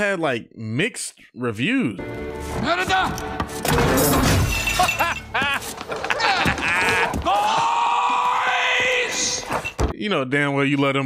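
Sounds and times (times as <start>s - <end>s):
crockery breaking: 3.6s - 7.2s
man laughing: 4.8s - 7.4s.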